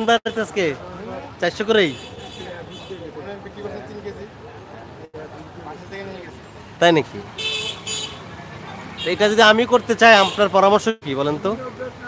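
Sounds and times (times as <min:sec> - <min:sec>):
street traffic noise: 0:00.0 - 0:12.0
vehicle horn toots: 0:01.8 - 0:03.1, 0:07.4 - 0:08.2.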